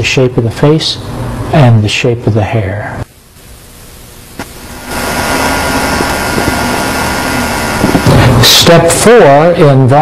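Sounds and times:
motor whirring: 4.4s - 8.6s.

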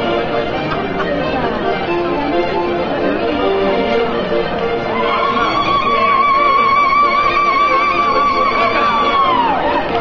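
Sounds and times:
crowd singing: 5.0s - 10.0s.

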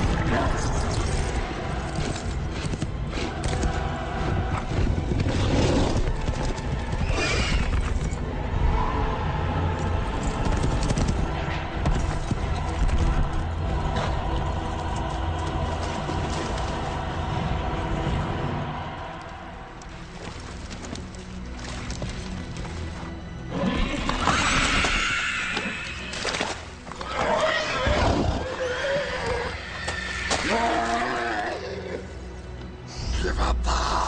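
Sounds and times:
horses galloping on dirt: 10.2s - 14.0s
horse neighing: 23.5s - 32.0s.

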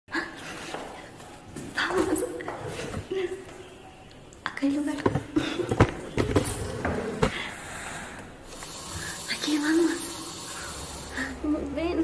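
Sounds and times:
woman speaking: 4.5s - 5.3s, 9.3s - 10.2s, 11.2s - 12.0s.

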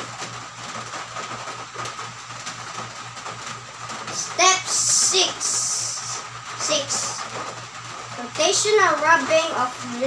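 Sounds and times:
constant low hum: 0.0s - 10.0s.

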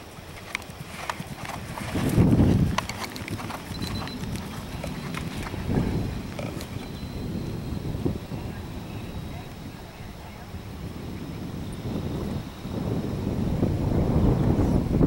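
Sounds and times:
horse hoofbeats on grass: 0.0s - 13.0s.

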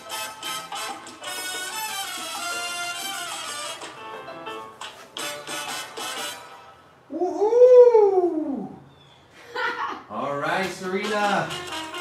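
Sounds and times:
dance music: 0.0s - 6.5s, 10.6s - 12.0s
long rising and falling vocal call: 7.1s - 9.1s.

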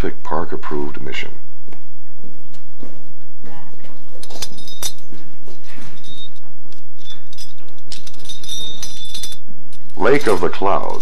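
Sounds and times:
steady low hum: 0.0s - 11.0s
metal hardware clinking: 4.2s - 11.0s.

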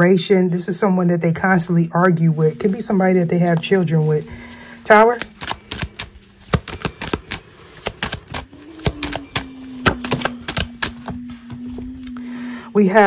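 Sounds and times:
cards being shuffled: 2.6s - 12.1s
low steady hum: 8.4s - 13.0s.

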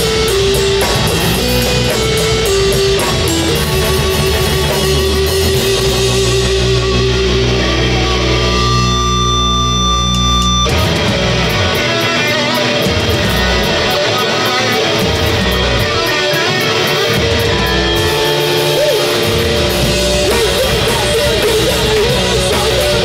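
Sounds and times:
live punk rock band: 0.0s - 23.0s.

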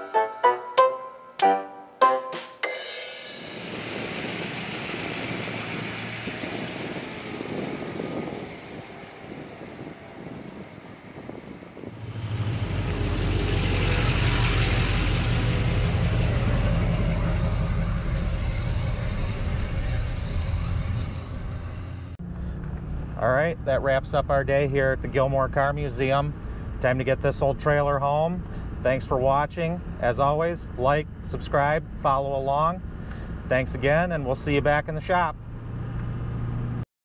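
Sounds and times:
truck engine and tyres rumbling: 3.4s - 36.8s.

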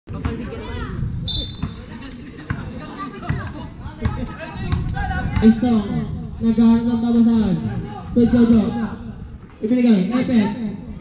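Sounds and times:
kids chattering: 0.1s - 1.0s, 1.6s - 5.4s
basketball bouncing on pavement: 2.5s - 5.6s.

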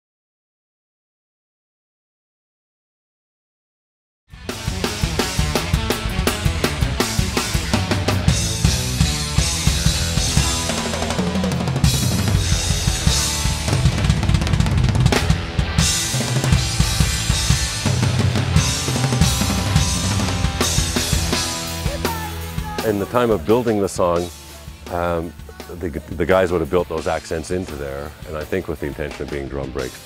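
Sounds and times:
rock drum kit played hard: 4.3s - 30.0s
band instruments: 4.4s - 30.0s.

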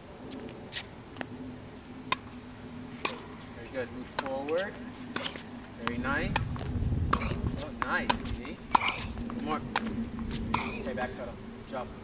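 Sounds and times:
faint steady hum: 0.0s - 12.0s
tennis balls struck by rackets: 2.0s - 2.3s, 2.9s - 11.2s.

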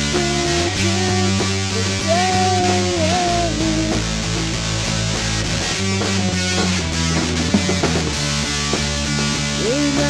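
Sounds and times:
bass guitar: 0.0s - 10.0s
drums: 0.0s - 10.0s
electric guitar: 0.0s - 10.0s.

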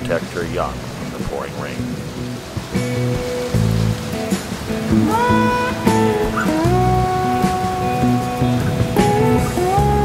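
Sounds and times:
sliding held notes music: 1.4s - 10.0s.

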